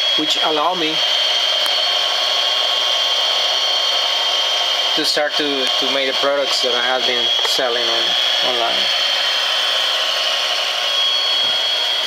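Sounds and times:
lathe spindle whining: 0.0s - 12.0s.

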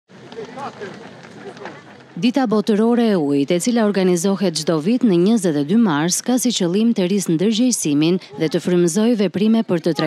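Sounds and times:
faint voices of passers-by: 0.1s - 10.0s.

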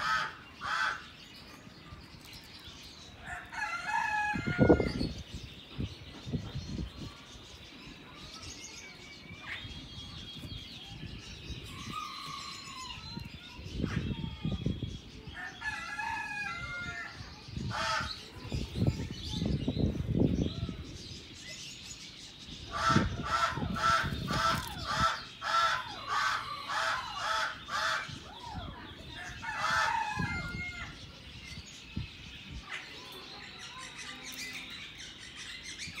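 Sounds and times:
birds calling: 0.0s - 36.0s.

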